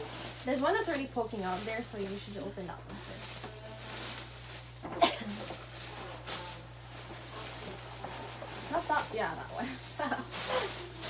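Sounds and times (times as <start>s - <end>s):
tissue paper rustling: 0.0s - 11.0s.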